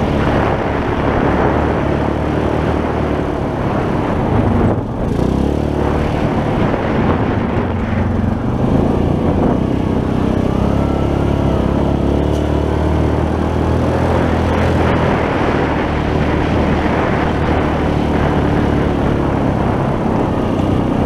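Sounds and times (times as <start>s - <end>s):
quad bike engine running: 0.0s - 21.0s.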